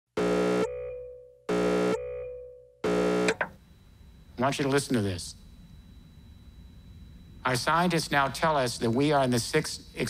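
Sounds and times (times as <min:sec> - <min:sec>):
synthesizer chord blasts: 0:00.2 - 0:03.4.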